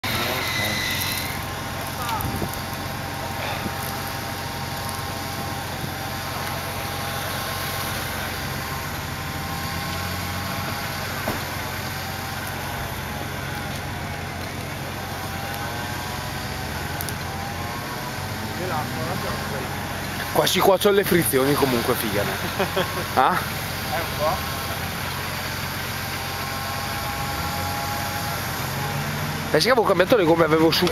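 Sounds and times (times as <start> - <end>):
off-road engine revving: 0.0 - 30.9.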